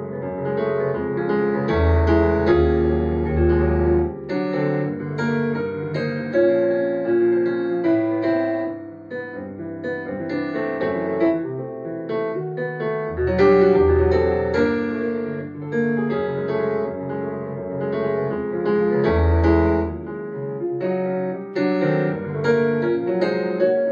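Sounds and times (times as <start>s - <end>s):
solo jazz piano: 0.0s - 23.9s.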